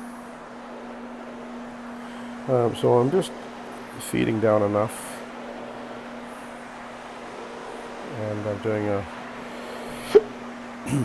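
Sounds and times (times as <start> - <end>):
carpet cleaning machine humming: 0.0 - 11.0
pad scrubbing carpet hiss: 9.2 - 10.4.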